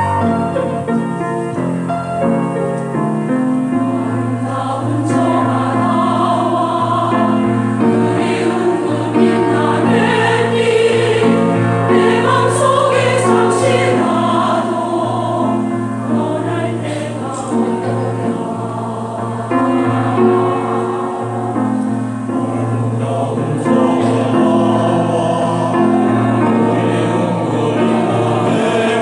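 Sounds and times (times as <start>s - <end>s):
mixed choir singing: 0.0s - 1.1s, 3.6s - 29.0s
piano accompaniment: 0.0s - 29.0s.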